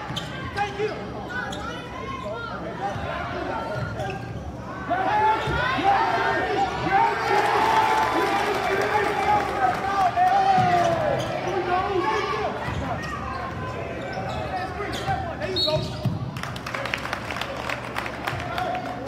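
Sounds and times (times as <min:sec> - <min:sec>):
people shouting and yelling: 0:00.0 - 0:15.9.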